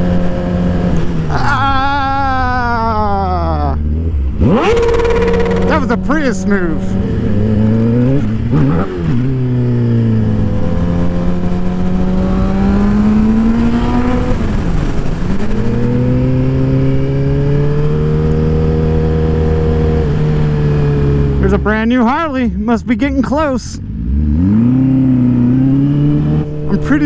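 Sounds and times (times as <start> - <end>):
motorcycle engine revving: 0.0 - 1.8, 2.6 - 22.7, 23.3 - 27.0.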